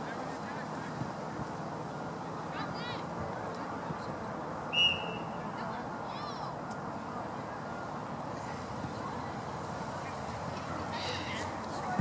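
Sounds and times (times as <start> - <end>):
referee's whistle blast: 4.7 - 5.3.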